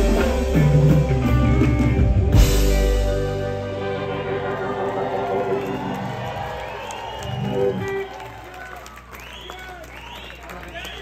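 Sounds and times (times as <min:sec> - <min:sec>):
live reggae band playing: 0:00.0 - 0:08.2
crowd cheering: 0:03.1 - 0:11.0.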